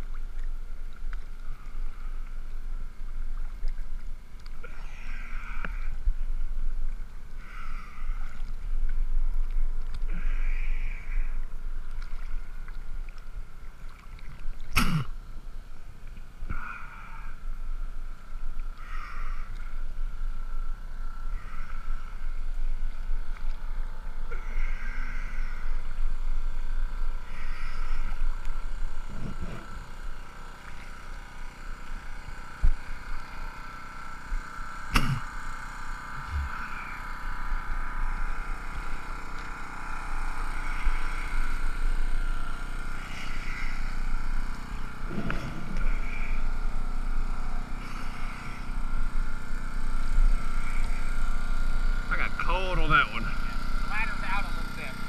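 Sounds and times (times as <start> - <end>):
steady hum: 0.0 - 55.0
water and wind noise: 0.0 - 55.0.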